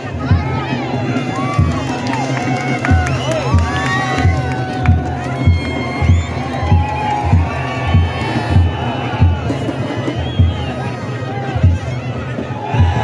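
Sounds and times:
crowd shouting and cheering: 0:00.0 - 0:13.0
deep drum beating: 0:00.0 - 0:13.0.

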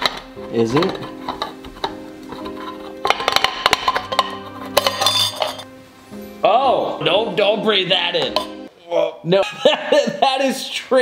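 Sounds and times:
background music with held notes: 0:00.0 - 0:08.8.

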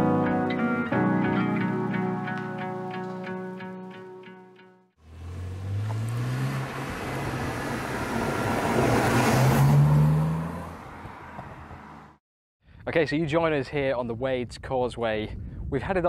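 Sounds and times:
car engine accelerating past: 0:05.0 - 0:12.2.

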